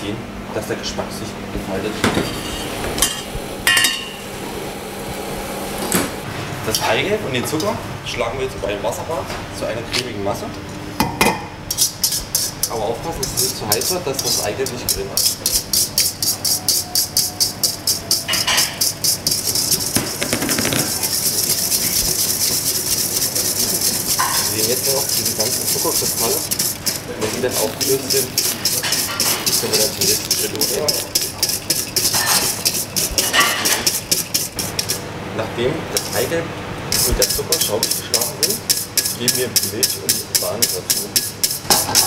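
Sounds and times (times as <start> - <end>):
steady low hum: 0.0 - 42.0
wire whisk scraping a steel bowl: 11.7 - 35.0, 35.9 - 36.3, 36.9 - 42.0
sugar rustle: 15.2 - 35.0
saucepan knocking on cooktop: 19.7 - 22.3.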